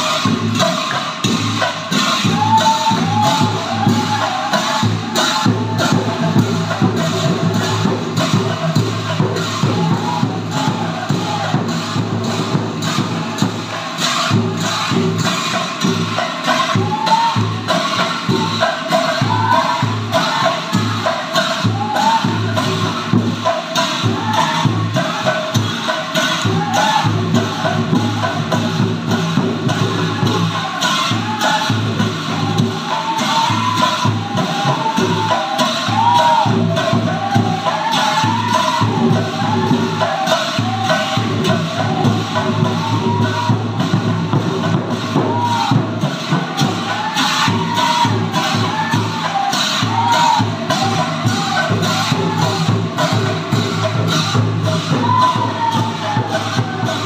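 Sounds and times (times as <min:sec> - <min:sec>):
group of voices chanting: 0:00.0 - 0:57.0
large brass cymbals clashing: 0:00.0 - 0:57.0
rhythmic clapping: 0:00.0 - 0:57.0.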